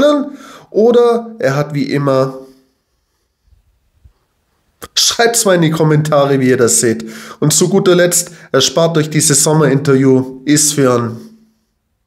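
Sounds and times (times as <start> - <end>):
person speaking: 0.0 - 2.6, 4.8 - 11.4.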